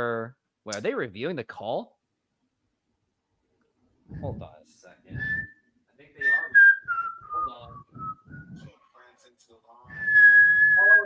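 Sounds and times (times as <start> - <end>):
person speaking: 4.1 - 5.5, 7.2 - 9.0
person whistling a held note: 5.2 - 5.6, 9.9 - 11.0.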